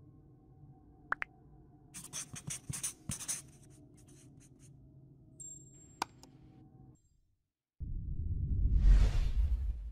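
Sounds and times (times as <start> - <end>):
pen scratching on paper: 2.0 - 4.7.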